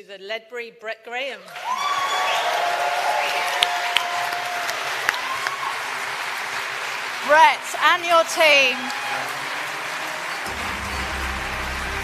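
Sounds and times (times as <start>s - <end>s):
audience applauding: 1.4s - 12.0s.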